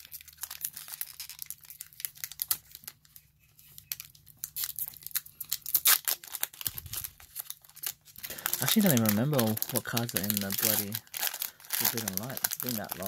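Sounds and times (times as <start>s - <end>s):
foil wrapper tearing and crinkling: 0.0s - 13.0s.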